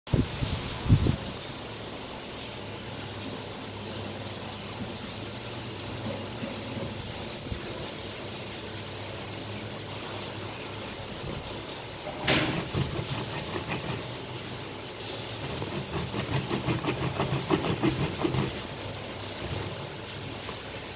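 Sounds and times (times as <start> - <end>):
electric fan humming: 10.8 - 20.9
juicer squeezing knocks and scrapes: 11.2 - 14.7, 15.3 - 20.9.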